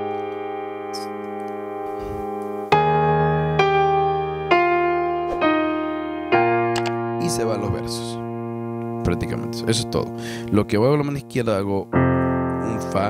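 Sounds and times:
digital piano playing slowly: 0:00.0 - 0:13.0.

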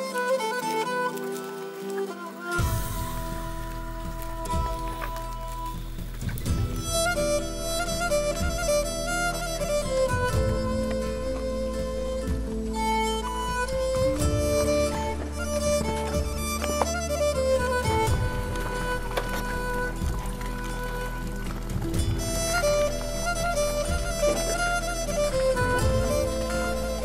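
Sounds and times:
bowed fiddle melody: 0:00.0 - 0:27.0
steady low drone: 0:02.6 - 0:27.0.

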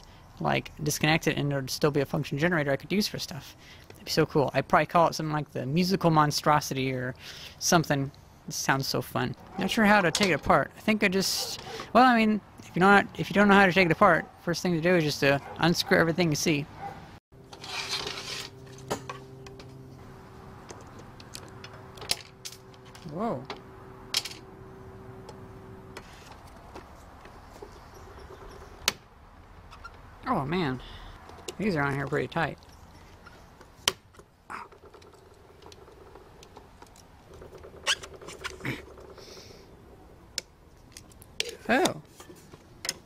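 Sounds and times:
short scrape: 0:17.5 - 0:18.9.

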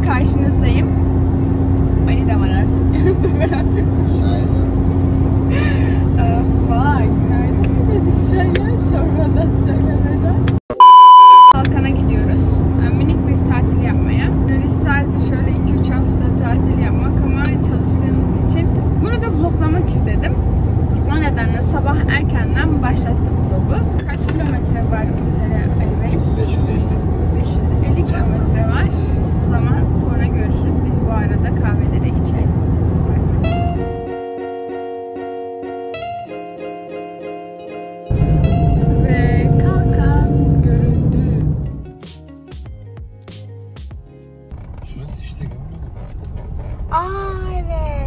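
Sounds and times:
woman talking: 0:00.0 - 0:00.9, 0:02.0 - 0:03.6, 0:06.2 - 0:10.4, 0:11.5 - 0:20.4, 0:21.0 - 0:32.5, 0:39.0 - 0:41.6
car cabin road and engine noise: 0:00.0 - 0:36.3, 0:38.0 - 0:42.0, 0:44.0 - 0:48.0
loud test-tone beep: 0:10.7 - 0:11.6.

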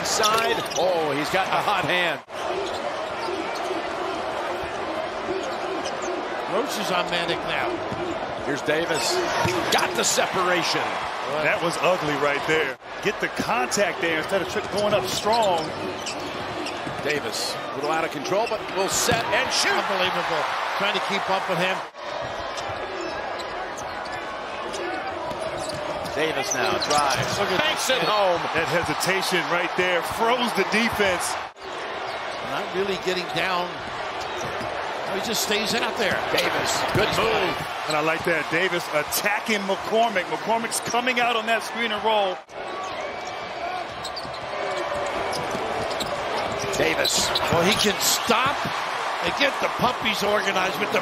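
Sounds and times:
arena crowd noise: 0:00.0 - 0:51.0
sneaker squeaks: 0:00.1 - 0:01.1, 0:02.3 - 0:03.7, 0:05.4 - 0:06.2, 0:14.2 - 0:19.3, 0:22.2 - 0:27.4, 0:34.1 - 0:34.8, 0:42.6 - 0:48.7
basketball dribbling on court: 0:43.9 - 0:47.8.

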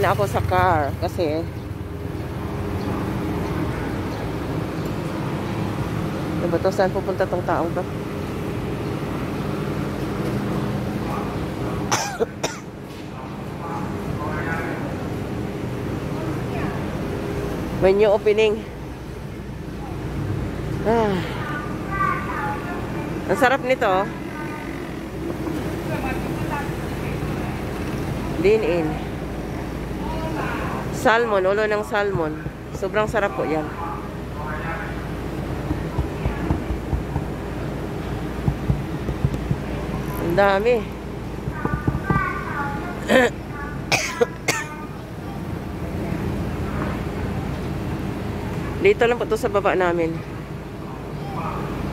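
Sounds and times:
low background hum: 0:00.0 - 0:51.6
person coughing: 0:11.9 - 0:12.7, 0:43.0 - 0:44.8
car rumbling while driving: 0:30.8 - 0:43.6
light knocks: 0:38.4 - 0:39.6.

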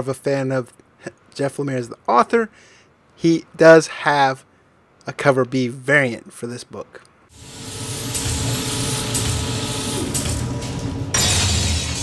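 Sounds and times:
mechanical whirring and hiss: 0:07.3 - 0:11.5
sudden loud hit: 0:11.0 - 0:12.0.

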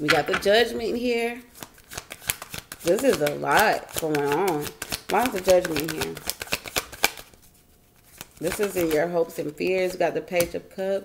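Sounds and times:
cards being shuffled: 0:01.6 - 0:10.0.

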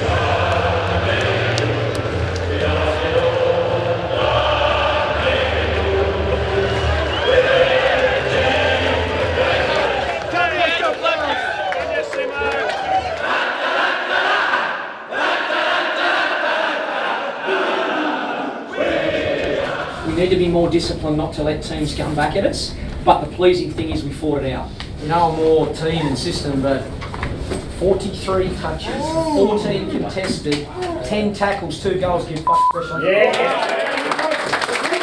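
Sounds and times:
group singing together: 0:00.0 - 0:10.3, 0:13.1 - 0:20.2
crowd voices and cheering: 0:00.0 - 0:16.2, 0:32.8 - 0:35.0.

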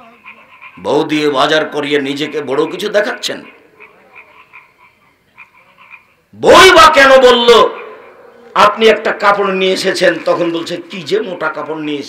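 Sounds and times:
faint croak-like animal calls: 0:00.0 - 0:06.4, 0:07.4 - 0:08.6.

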